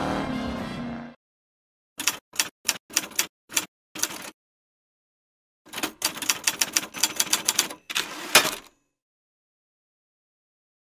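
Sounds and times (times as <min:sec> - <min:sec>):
typewriter keys clacking: 0:05.7 - 0:08.6.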